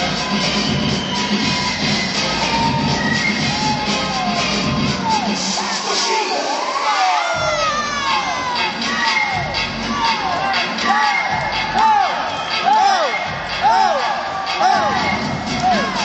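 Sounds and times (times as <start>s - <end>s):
crowd cheering and shouting: 0.0s - 16.0s
dance music: 0.0s - 16.0s.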